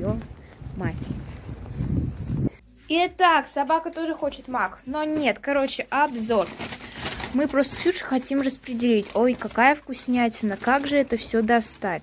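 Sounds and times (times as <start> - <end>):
microphone handling noise: 0.0 - 2.6
wind rumbling: 0.0 - 2.6.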